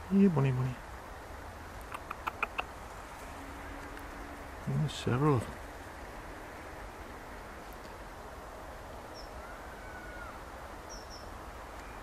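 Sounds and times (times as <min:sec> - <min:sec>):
low background hiss and rumble: 0:00.0 - 0:12.0.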